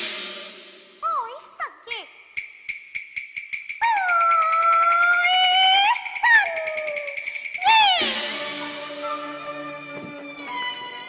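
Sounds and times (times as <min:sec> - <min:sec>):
quick percussion ticks: 0:02.2 - 0:08.4
child singing opera: 0:03.8 - 0:10.1.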